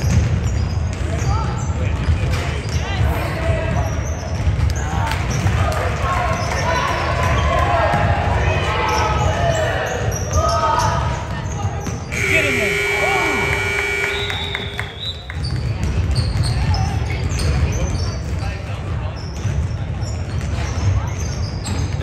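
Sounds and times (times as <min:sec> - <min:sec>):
voices echoing in hall: 0:05.0 - 0:15.4
steady buzzer: 0:12.1 - 0:15.0.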